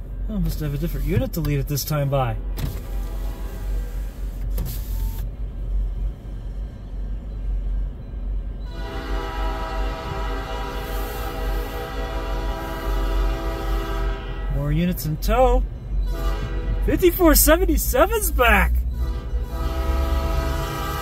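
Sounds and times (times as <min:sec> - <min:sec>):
low steady rumble: 0:00.0 - 0:21.0
locomotive air horn: 0:02.9 - 0:04.0, 0:08.6 - 0:21.0.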